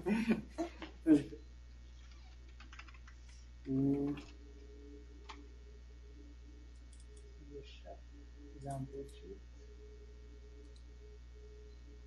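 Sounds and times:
computer keys clicking: 0:02.0 - 0:04.3, 0:06.7 - 0:07.3, 0:08.6 - 0:09.3, 0:10.6 - 0:10.9.

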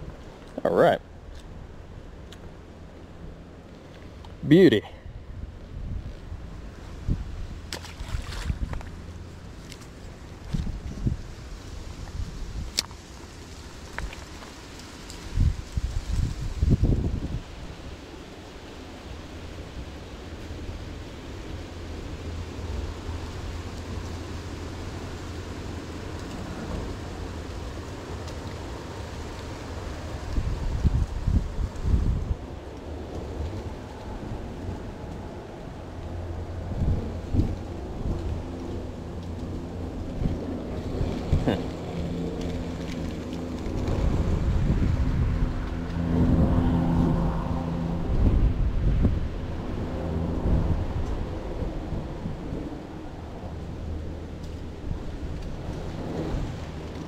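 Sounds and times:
wind buffeting microphone: 0:01.2 - 0:12.9, 0:15.2 - 0:18.0, 0:29.8 - 0:57.0.

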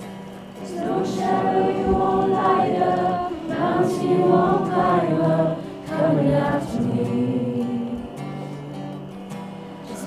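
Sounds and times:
acoustic guitar playing: 0:00.0 - 0:10.0
group singing worship song: 0:00.0 - 0:10.0.

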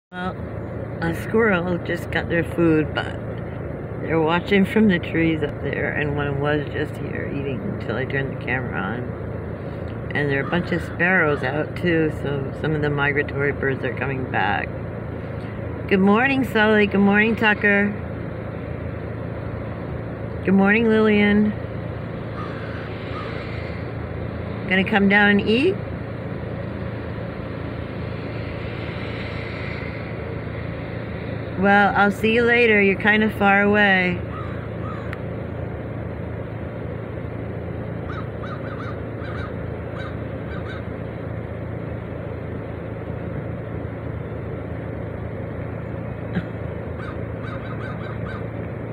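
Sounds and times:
steady low hum: 0:00.0 - 0:48.9
ravens calling: 0:09.1 - 0:11.9, 0:21.5 - 0:32.6, 0:34.2 - 0:35.4, 0:37.9 - 0:41.2, 0:46.3 - 0:48.7.

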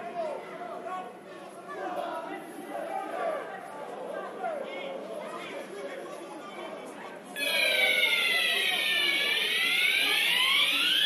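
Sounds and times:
overlapping chatter and calls: 0:00.0 - 0:11.0.

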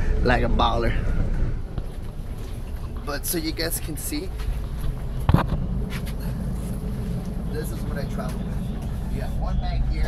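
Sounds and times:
bus engine rumble: 0:00.0 - 0:10.0.

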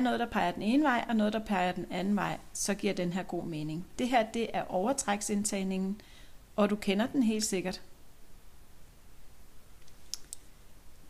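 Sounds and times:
knitting needles clicking: 0:09.8 - 0:10.5.

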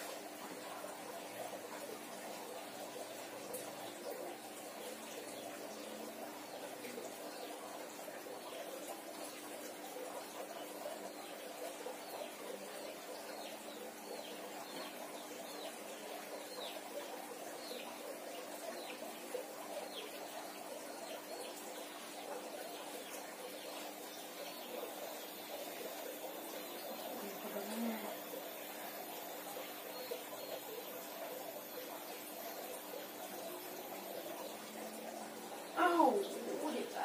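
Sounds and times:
birds chirping: 0:00.0 - 0:37.0.

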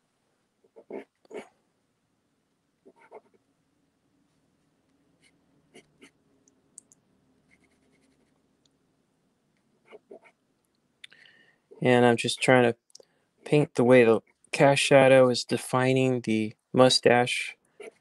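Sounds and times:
faint low hum: 0:00.0 - 0:18.0
pastel scratching on paper: 0:07.5 - 0:08.3.

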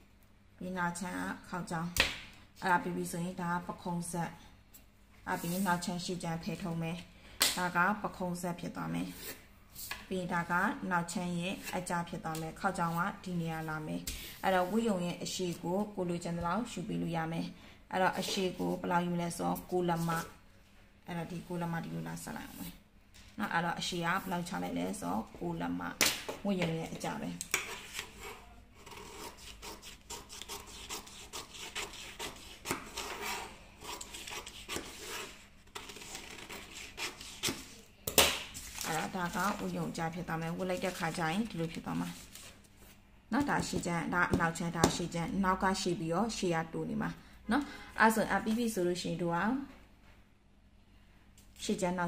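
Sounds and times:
woman's voice: 0:00.6 - 0:02.0, 0:02.6 - 0:04.4, 0:05.3 - 0:09.3, 0:10.1 - 0:20.4, 0:21.1 - 0:22.8, 0:23.4 - 0:27.4, 0:38.8 - 0:42.2, 0:43.3 - 0:49.8, 0:51.6 - 0:52.0
pen scratching along ruler: 0:27.5 - 0:37.8
scissors cutting paper: 0:27.5 - 0:37.8
paper rustling and scraping: 0:38.5 - 0:40.0, 0:40.6 - 0:42.7.

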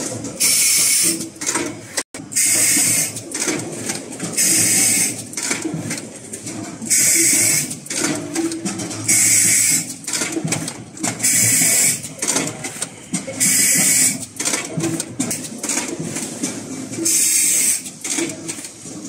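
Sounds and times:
mechanical clatter: 0:00.0 - 0:19.0.

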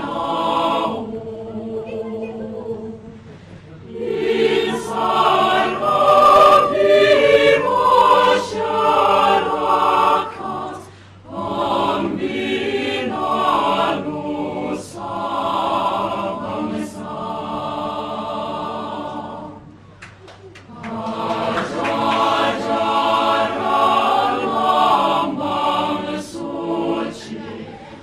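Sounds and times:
choir singing: 0:00.0 - 0:19.8, 0:20.6 - 0:28.0.

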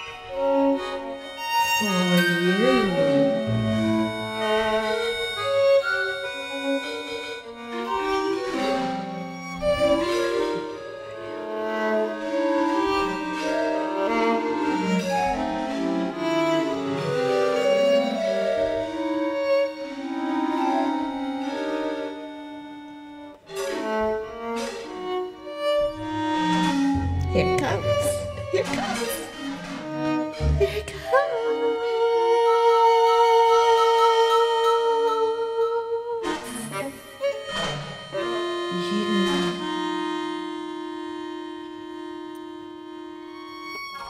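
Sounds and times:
violin held notes with vibrato: 0:00.0 - 0:44.0
deeper held notes: 0:01.8 - 0:05.1, 0:22.0 - 0:31.8.

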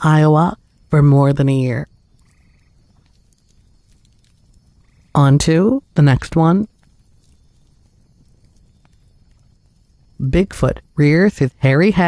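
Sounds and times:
faint background ambience: 0:00.0 - 0:12.0.

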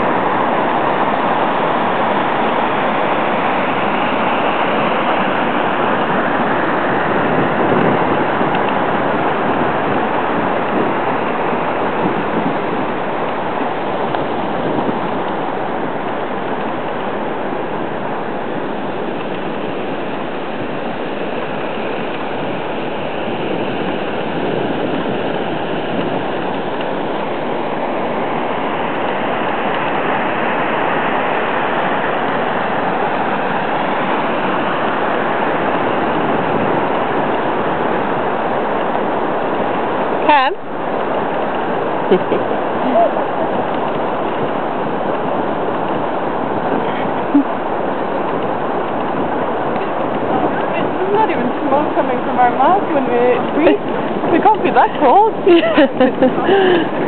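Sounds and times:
steady rushing noise: 0:00.0 - 0:57.0.

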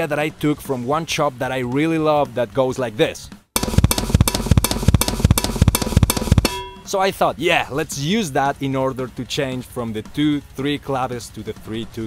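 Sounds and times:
drum kit fast snare and bass: 0:03.6 - 0:06.9.

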